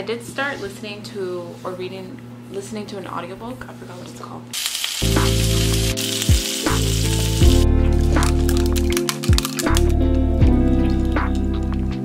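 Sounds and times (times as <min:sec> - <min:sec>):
fish sizzling in a frying pan: 0:04.6 - 0:07.6
background music with steady beat: 0:05.0 - 0:12.0.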